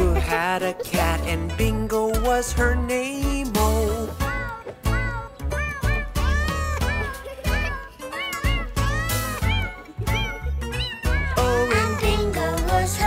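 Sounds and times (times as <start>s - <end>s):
upbeat children's song: 0.0s - 10.2s, 10.8s - 13.0s
cartoon cat meowing: 4.2s - 12.4s.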